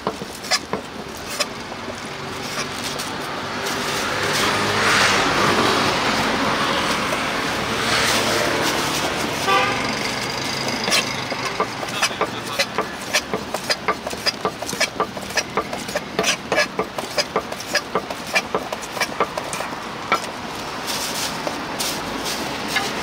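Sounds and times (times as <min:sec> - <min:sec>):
passing traffic: 0:00.0 - 0:23.0
car horn toot: 0:09.4 - 0:10.0
cleaver chopping on wooden board: 0:10.7 - 0:20.3.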